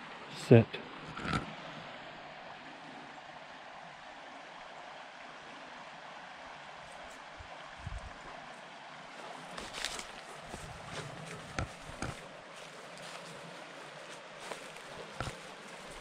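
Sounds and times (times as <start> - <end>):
creek water rushing: 0.0 - 16.0.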